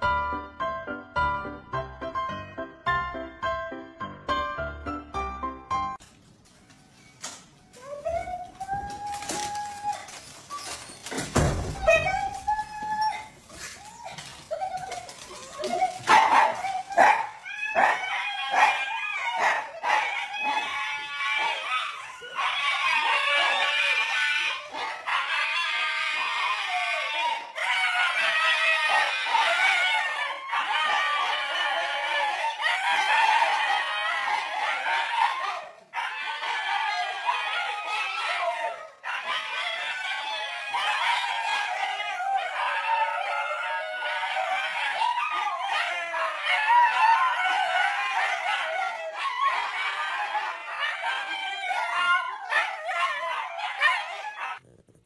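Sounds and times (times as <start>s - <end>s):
dogs yipping and barking: 6.9s - 54.7s
dogs howling chorus: 7.8s - 54.7s.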